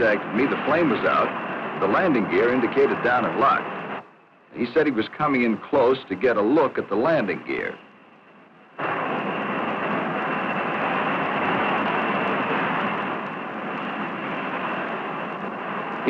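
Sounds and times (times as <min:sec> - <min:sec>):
jet engine rushing with high whine: 0:00.0 - 0:16.0.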